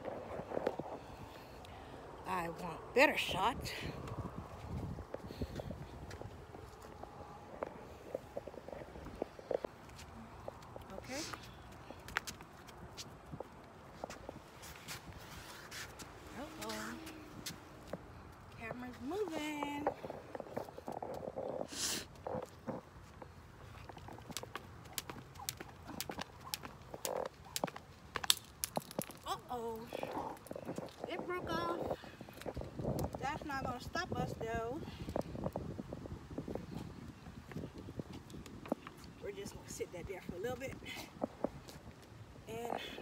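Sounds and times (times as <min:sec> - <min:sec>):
woman's indistinct voice: 0:10.1 - 0:12.0, 0:16.3 - 0:17.6, 0:18.5 - 0:21.6, 0:29.2 - 0:32.4, 0:33.0 - 0:34.9, 0:42.4 - 0:43.0
jump rope slapping on concrete: 0:24.0 - 0:29.2.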